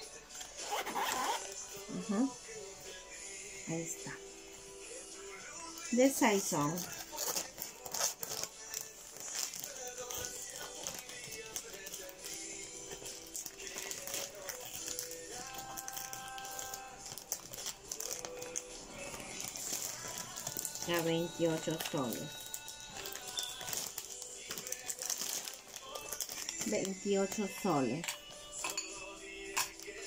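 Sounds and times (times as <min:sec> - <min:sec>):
faint background music: 0:00.0 - 0:30.0
plastic bag crinkling: 0:05.9 - 0:28.3.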